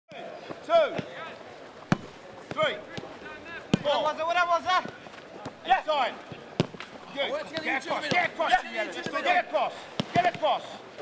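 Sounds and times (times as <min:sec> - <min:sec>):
boot striking football: 0:01.9 - 0:04.1, 0:04.7 - 0:05.6, 0:06.3 - 0:08.4, 0:10.0 - 0:10.5.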